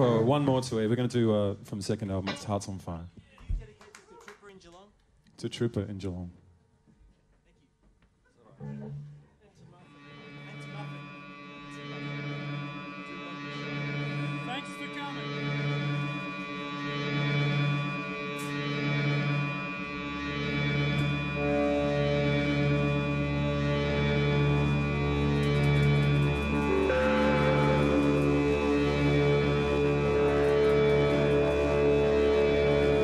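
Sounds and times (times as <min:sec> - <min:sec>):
band droning chord: 0:08.6 - 0:09.2, 0:09.8 - 0:33.0
pulsing low note: 0:09.9 - 0:33.0
deep bass tone: 0:15.2 - 0:33.0.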